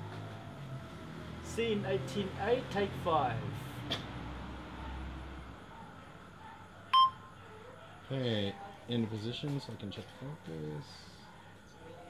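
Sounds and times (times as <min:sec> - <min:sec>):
faint room hum: 0:00.0 - 0:12.0
short electronic beep: 0:07.0 - 0:07.2.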